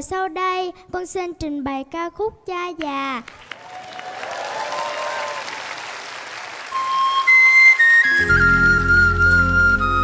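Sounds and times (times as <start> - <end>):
audience applauding: 3.2 - 8.1.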